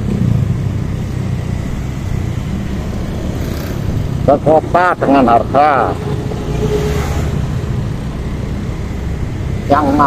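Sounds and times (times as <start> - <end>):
motorcycle engine running: 0.0 - 10.0
road and wind noise: 0.0 - 10.0.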